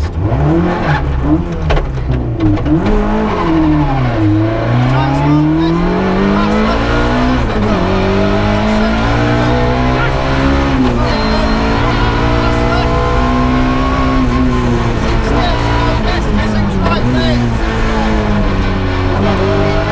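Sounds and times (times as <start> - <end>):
car engine accelerating: 0.0 - 19.9.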